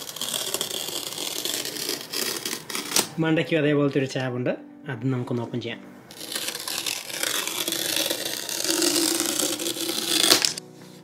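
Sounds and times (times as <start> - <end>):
paper strip tearing: 0.0 - 3.2, 6.1 - 10.6.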